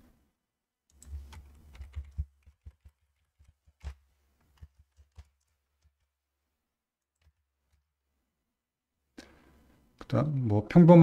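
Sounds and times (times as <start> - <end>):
keyboard and mouse clicks: 0.9 - 6.1, 7.0 - 7.9.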